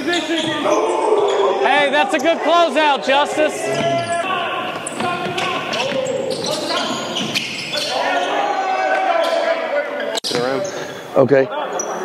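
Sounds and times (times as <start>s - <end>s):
players calling out: 0.0s - 12.0s.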